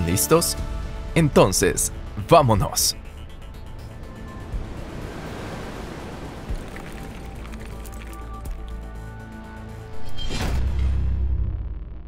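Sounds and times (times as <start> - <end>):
whooshing wash of noise: 3.9 - 8.1.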